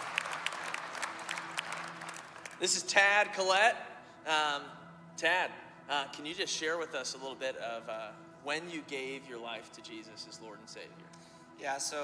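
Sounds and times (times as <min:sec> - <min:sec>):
congregation applauding: 0:00.0 - 0:03.2.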